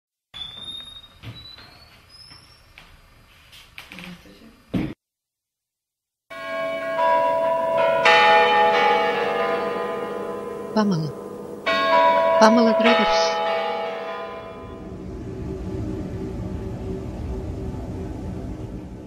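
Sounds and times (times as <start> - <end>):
faint high rising chirps: 0.4 - 3.5
bells ringing: 6.3 - 15.6.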